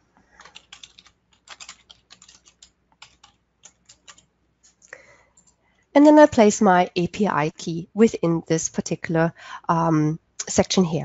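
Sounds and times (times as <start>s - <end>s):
typing on computer keyboard: 0.3s - 4.3s.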